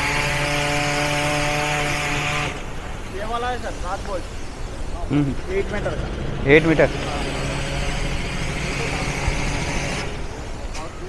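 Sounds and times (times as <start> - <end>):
hissing whine: 0.0 - 11.0
machine engine humming: 0.0 - 11.0.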